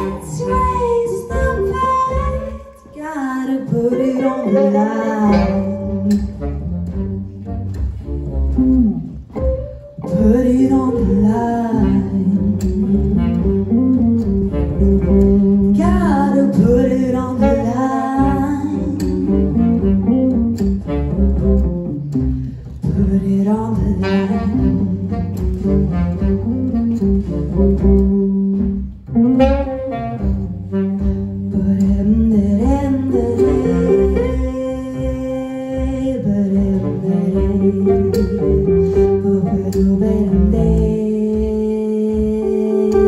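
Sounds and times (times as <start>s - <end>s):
person singing: 0.0s - 5.9s
live soul-jazz band playing: 0.0s - 43.0s.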